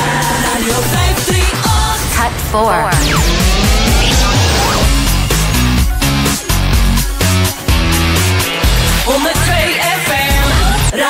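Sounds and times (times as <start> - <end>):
radio jingle music with low beat: 2.4 - 8.1
falling whoosh: 2.9 - 6.0.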